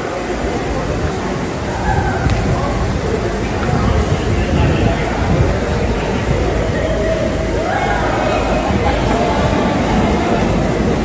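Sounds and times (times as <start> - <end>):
loud rumbling noise: 0.0 - 11.0.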